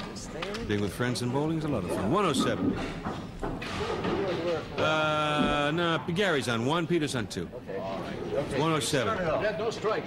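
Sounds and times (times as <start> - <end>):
indistinct talk of several people: 0.0 - 10.0.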